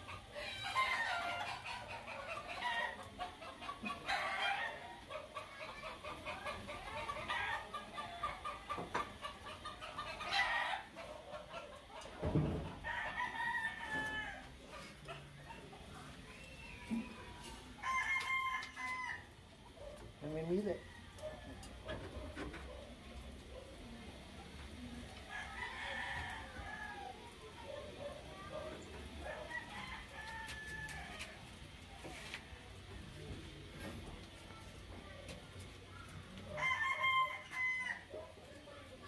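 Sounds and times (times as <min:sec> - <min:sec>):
roosters crowing: 0:00.0 - 0:15.3, 0:16.4 - 0:19.5, 0:25.1 - 0:27.4, 0:29.0 - 0:31.7, 0:36.4 - 0:38.2.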